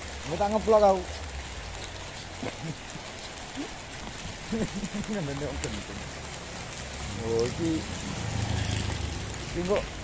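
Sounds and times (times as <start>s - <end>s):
rain on wet pavement: 0.0s - 10.0s
person's voice: 4.9s - 6.1s.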